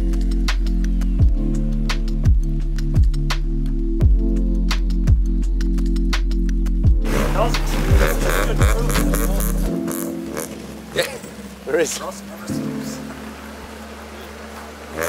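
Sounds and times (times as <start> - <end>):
background music: 0.0 - 15.0
car engine running: 6.9 - 15.0
tyres crunching on gravel: 7.0 - 15.0.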